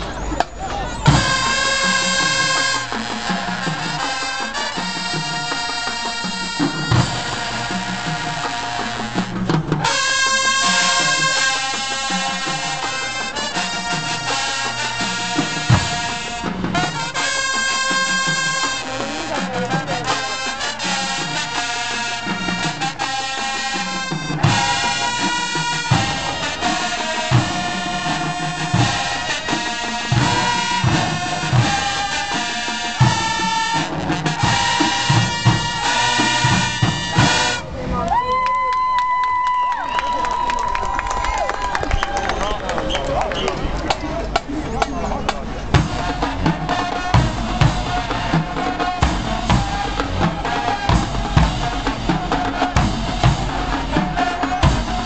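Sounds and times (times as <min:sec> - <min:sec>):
marching band playing: 0:00.0 - 0:55.0.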